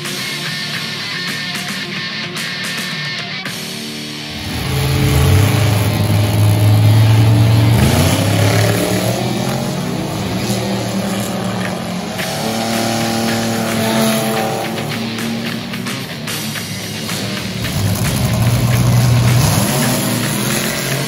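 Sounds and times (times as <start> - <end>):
rock music: 0.0 - 21.0
drag racing engines revving: 4.2 - 21.0.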